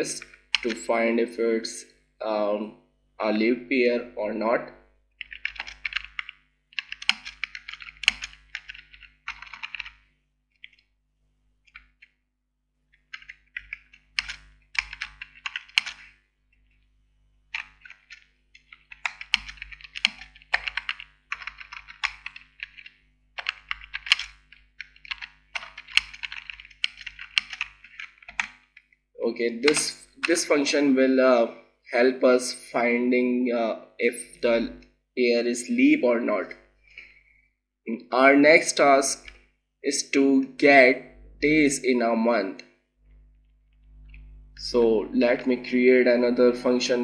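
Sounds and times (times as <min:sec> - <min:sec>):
typing on computer keyboard: 0:00.0 - 0:00.8, 0:05.2 - 0:10.0, 0:11.7 - 0:12.1, 0:12.9 - 0:16.2, 0:17.5 - 0:28.8, 0:29.7 - 0:30.4.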